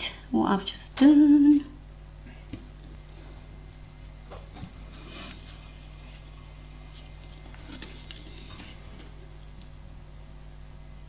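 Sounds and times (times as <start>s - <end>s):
low electrical hum: 0.0s - 11.0s
brush taps and scrapes: 4.3s - 9.2s.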